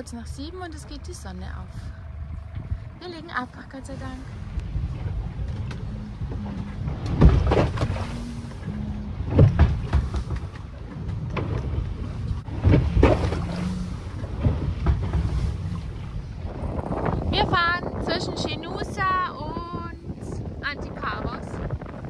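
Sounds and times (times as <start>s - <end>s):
water rushing: 0.0s - 21.7s
wind gusts on microphone: 0.0s - 22.0s
wind rushing: 11.4s - 22.0s.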